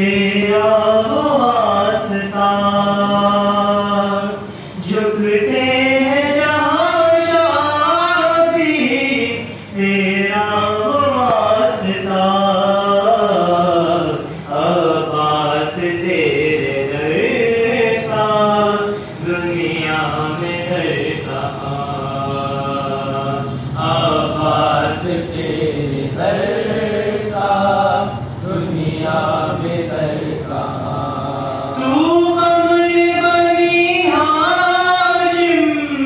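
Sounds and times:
man chanting into microphone: 0.0s - 36.0s.

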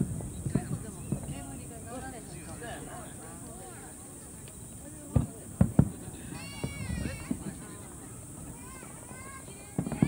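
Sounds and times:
distant firework booms: 0.0s - 2.0s, 5.1s - 7.6s, 9.6s - 10.0s.

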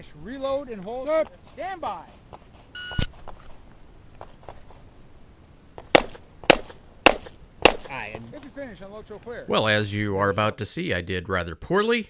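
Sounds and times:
pistol shots: 5.9s - 7.9s.

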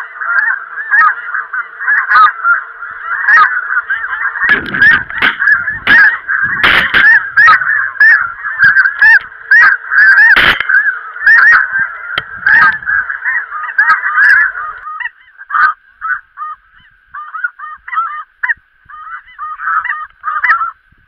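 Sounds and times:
geese honking: 0.0s - 20.8s
loud low thumps: 4.4s - 8.8s.

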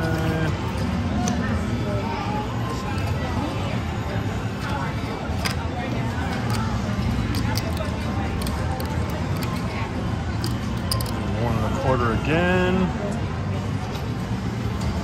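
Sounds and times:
cards and chips clicking: 0.0s - 1.5s, 4.6s - 11.3s
background chatter: 0.0s - 15.0s.

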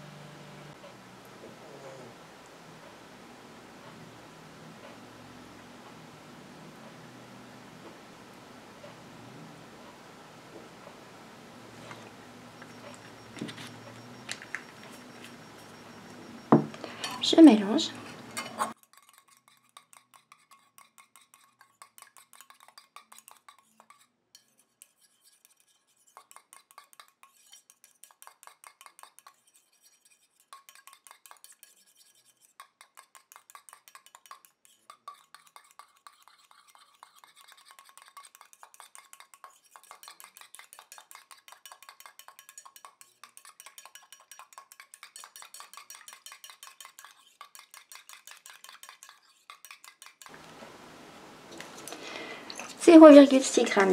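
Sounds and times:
whisk ticking against metal pan: 10.7s - 50.4s.

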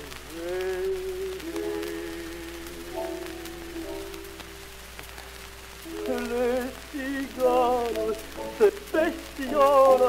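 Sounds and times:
person singing: 0.0s - 4.8s, 5.8s - 10.0s
record hiss and crackle: 0.0s - 10.0s.

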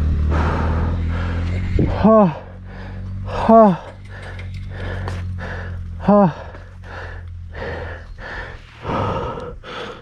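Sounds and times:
motorcycle engine idling: 0.0s - 10.0s
person breathing hard: 0.2s - 10.0s
person grunting: 1.8s - 2.6s, 3.3s - 3.9s, 6.0s - 6.7s.

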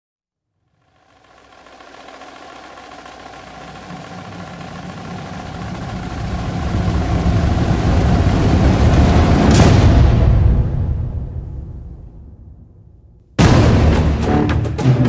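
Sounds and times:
low rumble: 0.9s - 14.2s.

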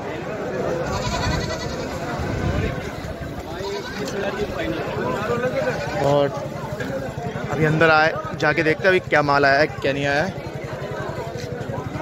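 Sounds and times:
people talking: 0.0s - 12.0s
goats bleating: 0.8s - 2.1s, 3.4s - 4.4s, 5.5s - 6.3s.

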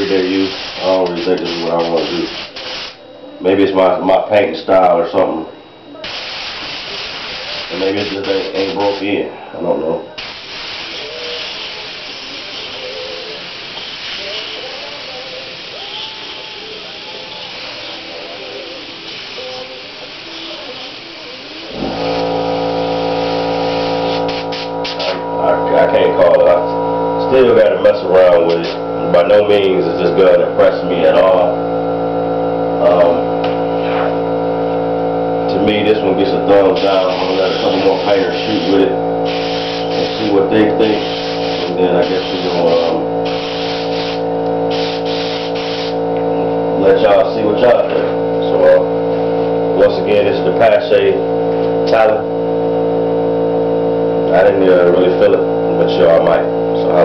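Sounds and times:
airbrush hissing: 0.0s - 3.0s, 6.0s - 9.1s, 10.2s - 25.2s, 36.7s - 46.1s.

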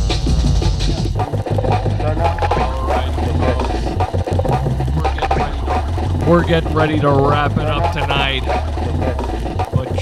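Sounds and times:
busy beat: 0.0s - 10.0s
stepping bass line: 0.0s - 10.0s.

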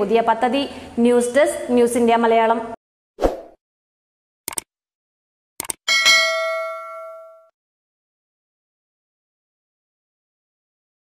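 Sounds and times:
bell ding: 5.9s - 7.5s.

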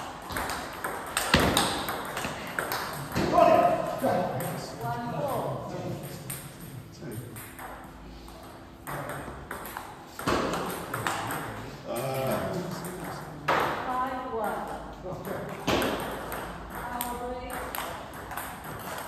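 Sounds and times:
table tennis ball hitting bats and table: 0.0s - 19.0s.

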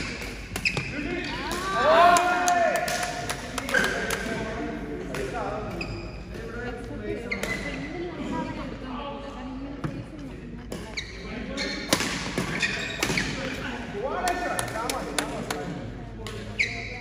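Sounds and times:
shoe squeaks on court floor: 0.6s - 1.3s, 5.7s - 6.3s, 7.2s - 7.8s, 10.8s - 13.5s, 16.4s - 17.0s.

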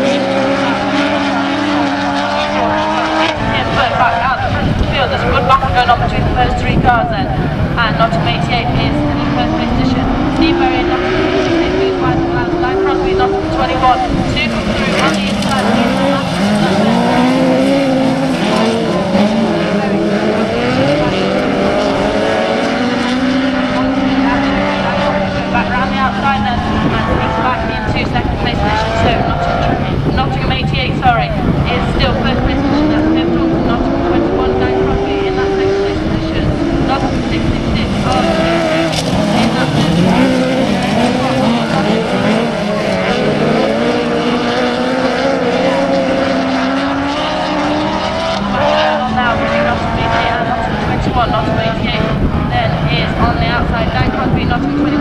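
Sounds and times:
racing buggy engines: 0.0s - 55.0s.

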